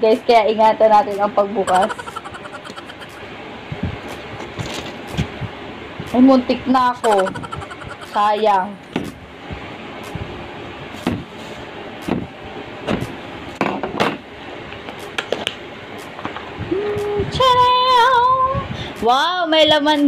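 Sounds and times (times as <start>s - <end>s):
cardboard and paper rustling: 4.4s - 5.0s.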